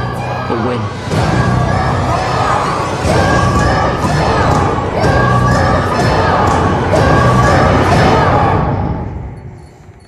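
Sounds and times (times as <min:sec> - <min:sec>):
children shouting and cheering: 0:00.0 - 0:09.1.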